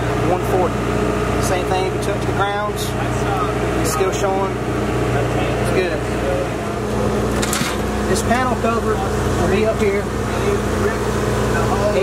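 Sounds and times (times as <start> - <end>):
generator engine running: 0.0 - 12.0.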